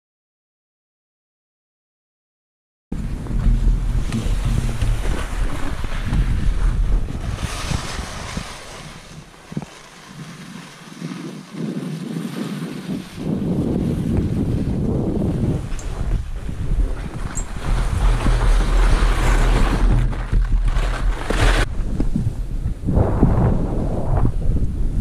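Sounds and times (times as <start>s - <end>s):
wind buffeting microphone: 2.9s - 25.0s
skis sliding over snow: 3.0s - 21.9s.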